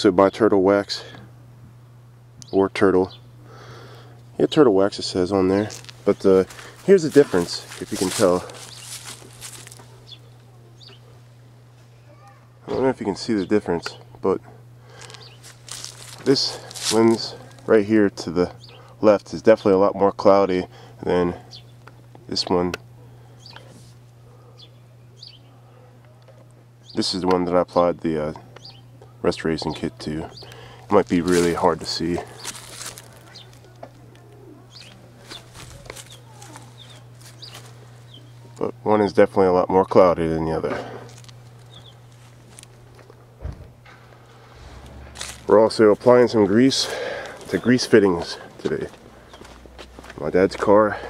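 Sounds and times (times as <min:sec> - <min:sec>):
steady low hum: 0:00.0 - 0:51.0
low hum: 0:40.8 - 0:51.0.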